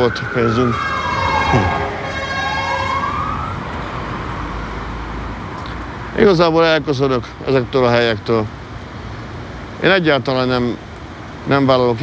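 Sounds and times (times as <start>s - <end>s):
emergency siren wailing: 0.0s - 5.2s
street traffic rumble: 0.0s - 12.0s.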